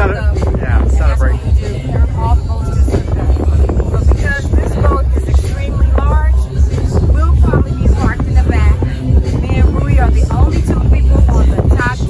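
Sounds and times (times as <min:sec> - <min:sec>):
loud music: 0:00.0 - 0:12.0
wind rumbling on microphone: 0:00.0 - 0:12.0
woman speaking: 0:00.0 - 0:12.0.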